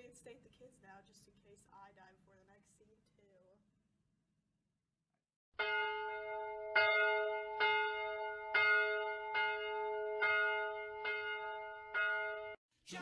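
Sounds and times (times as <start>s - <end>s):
bell tolling: 5.6s - 12.6s.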